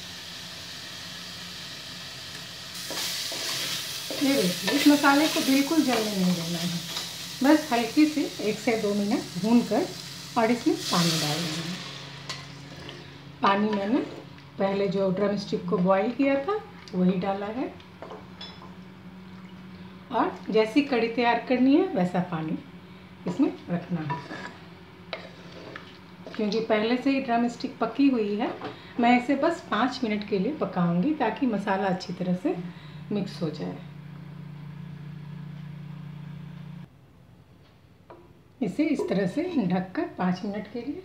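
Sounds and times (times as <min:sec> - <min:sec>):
low mechanical hum: 0:00.0 - 0:41.0.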